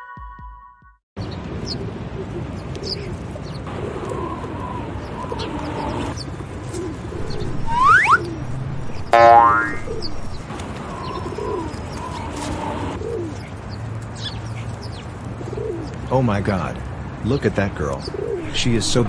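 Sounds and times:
small birds chirping: 0:01.2 - 0:16.5
doves cooing: 0:01.8 - 0:16.1, 0:17.4 - 0:19.0
cartoon rising whistle: 0:07.2 - 0:10.4
cartoon springy boing: 0:09.0 - 0:10.1.

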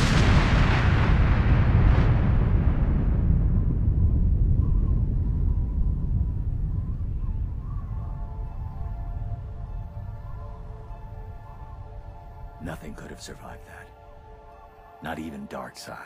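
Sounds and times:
explosion hiss: 0:00.0 - 0:05.2
deep rumble: 0:00.0 - 0:14.6
faint music: 0:04.4 - 0:16.0.

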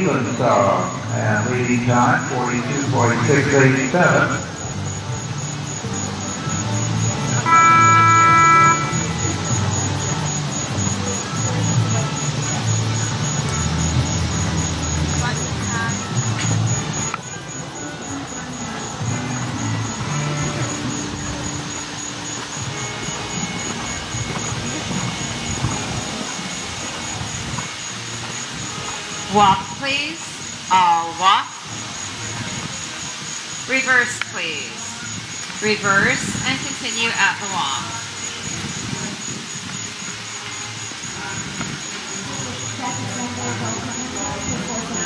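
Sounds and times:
distant pa voices: 0:00.0 - 0:45.0
horn blast: 0:07.1 - 0:12.6.

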